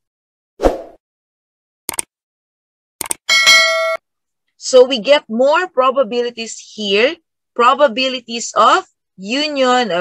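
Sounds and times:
notification bell ringing: 3.3 - 4.0.

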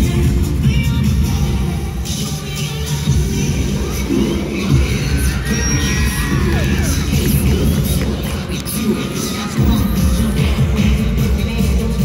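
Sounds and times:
cheerleading music with pounding beat: 0.0 - 12.0
crowd cheering and shouting: 4.4 - 12.0.

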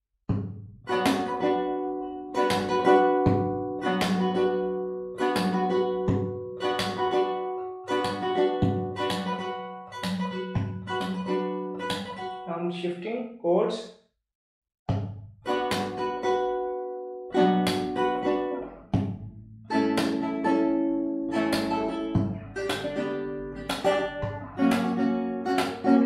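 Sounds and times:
percussive slaps on guitar: 0.3 - 12.4, 14.9 - 16.7, 17.3 - 26.0
classical guitar strummed rhythmically: 0.7 - 12.5, 15.4 - 26.0.

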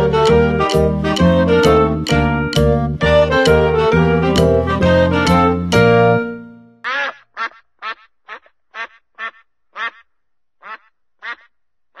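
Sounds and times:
background music: 0.0 - 6.8
duck quacking: 6.8 - 12.0.

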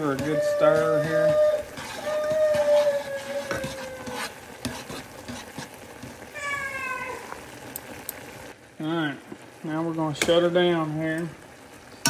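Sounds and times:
water boiling in a saucepan: 0.0 - 12.0.

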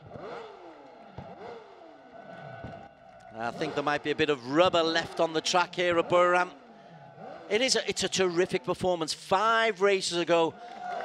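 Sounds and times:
motorcycle engine revving: 0.0 - 8.1.

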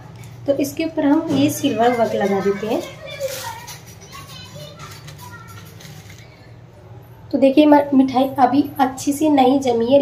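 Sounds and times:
children talking and playing: 0.1 - 10.0.

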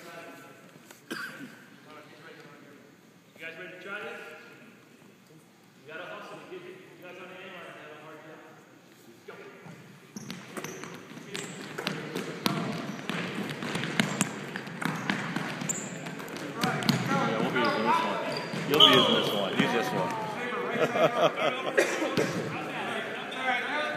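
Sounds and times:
basketballs bouncing: 10.2 - 20.2
voices in background: 15.6 - 23.9.

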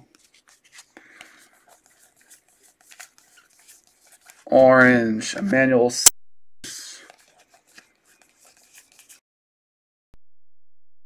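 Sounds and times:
trading cards rustling and clicking: 0.1 - 4.5, 7.0 - 9.2.

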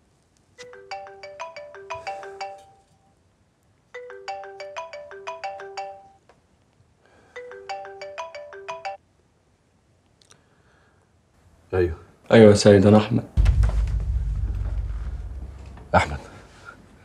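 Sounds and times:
mobile phone ringtone: 0.6 - 3.0, 4.0 - 6.2, 7.3 - 9.0.

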